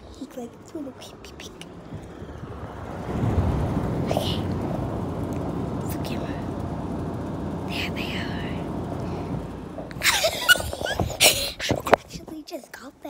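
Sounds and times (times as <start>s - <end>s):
steady low noise: 0.0s - 11.9s.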